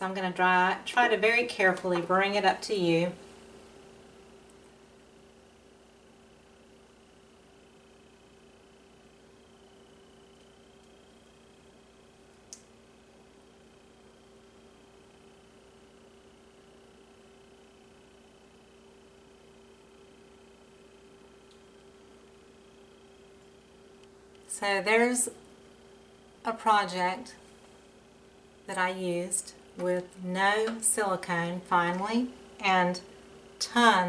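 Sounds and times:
faint steady hum: 0.0 - 34.0
small click: 12.5 - 12.7.

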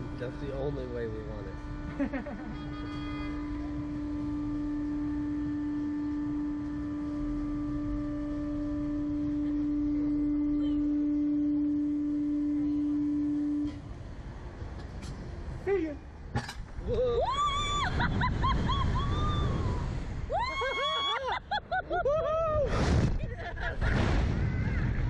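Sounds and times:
ride machinery humming: 0.0 - 23.8
low rumble: 1.2 - 20.5.

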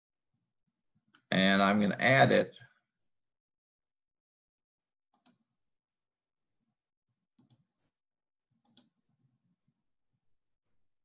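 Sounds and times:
computer mouse clicks: 5.1 - 5.5, 7.4 - 7.7, 8.6 - 9.0.

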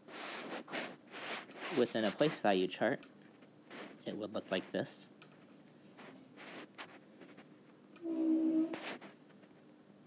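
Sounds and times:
stylus strokes on a tablet: 0.1 - 2.4.

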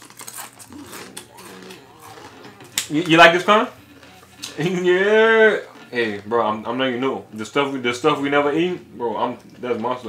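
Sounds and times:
tortilla chips crunching: 0.0 - 5.2.

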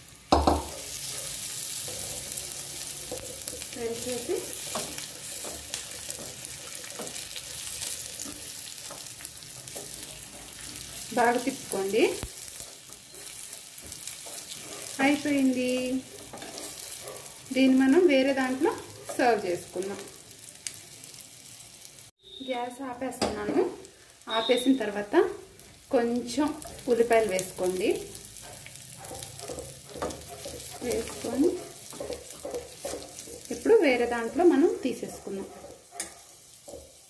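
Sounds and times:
leaves sizzling in hot oil: 0.0 - 37.0
spoon knocking on pan: 0.3 - 0.8, 28.4 - 33.8, 35.4 - 37.0
steel spoon stirring: 0.7 - 20.0, 26.4 - 37.0.

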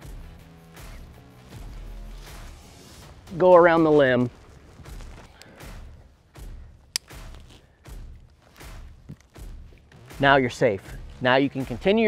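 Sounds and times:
rope swishing and scraping: 0.8 - 6.4, 7.1 - 10.0
sharp click: 6.9 - 7.3.

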